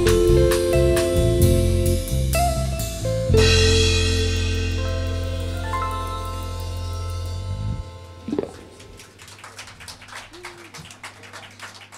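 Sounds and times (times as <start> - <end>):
sparse applause: 8.4 - 11.9.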